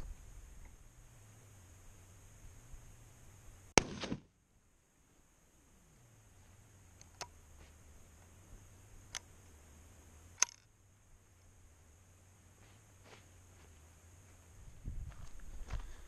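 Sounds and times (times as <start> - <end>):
rifle shot with echo: 3.8 - 4.3
rifle bolt clicks: 10.4 - 10.6.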